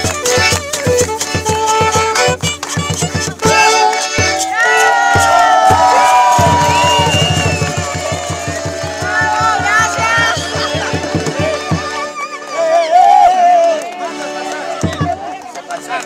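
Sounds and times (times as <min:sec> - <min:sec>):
strummed guitar: 0:00.0 - 0:04.8, 0:05.8 - 0:12.2
fast even beat: 0:00.0 - 0:12.3
crowd noise: 0:02.1 - 0:16.0
voices singing: 0:06.5 - 0:15.2.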